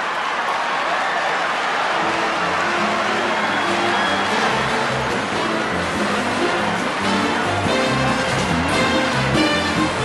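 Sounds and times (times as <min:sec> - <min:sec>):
audience laughing and applauding: 0:00.0 - 0:10.0
orchestra playing: 0:02.0 - 0:10.0.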